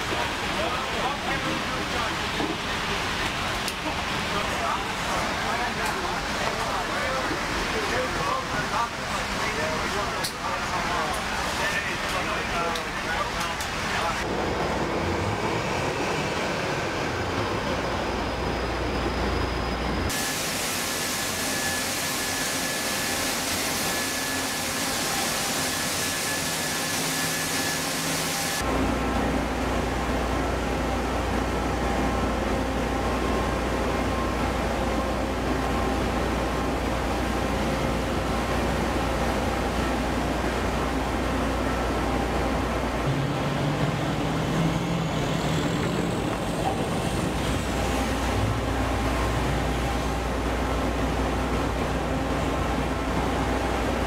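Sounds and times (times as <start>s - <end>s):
heavy vehicle engines: 0.0s - 54.0s
loud even hiss: 20.1s - 28.6s.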